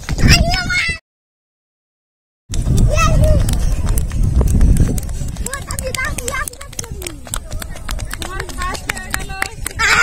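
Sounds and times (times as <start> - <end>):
children's footsteps on concrete: 2.5 - 10.0.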